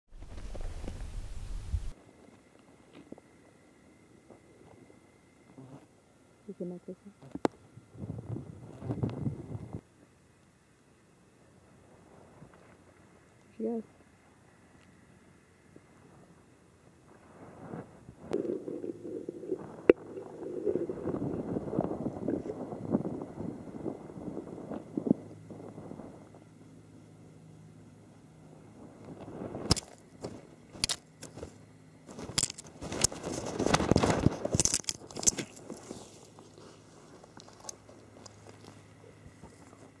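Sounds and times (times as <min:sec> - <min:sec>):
faint steady hum: 0:00.2 - 0:40.0
gopher scraping soil: 0:17.6 - 0:22.6, 0:29.2 - 0:40.0.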